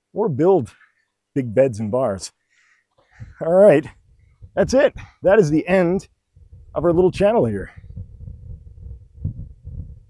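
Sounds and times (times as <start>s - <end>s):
wind buffeting microphone: 3.1s - 10.0s.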